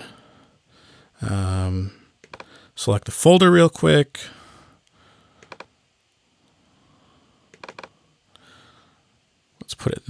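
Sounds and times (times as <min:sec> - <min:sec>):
computer mouse clicks: 0:02.2 - 0:02.5, 0:05.4 - 0:05.7, 0:07.5 - 0:07.9.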